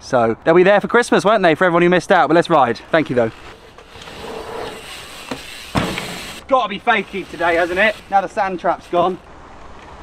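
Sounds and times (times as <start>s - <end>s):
bike tyres rolling over dirt: 2.5s - 10.0s
thump: 5.3s - 6.4s.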